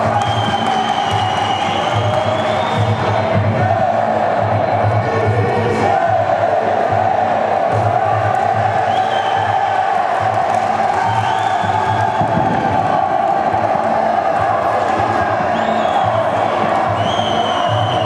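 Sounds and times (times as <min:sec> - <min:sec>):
music with low beat: 0:00.0 - 0:18.0
spectators cheering and shouting: 0:00.0 - 0:18.0.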